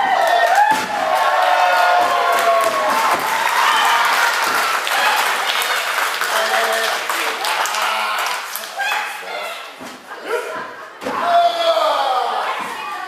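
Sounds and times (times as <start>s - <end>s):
crowd clapping: 0.0s - 9.2s.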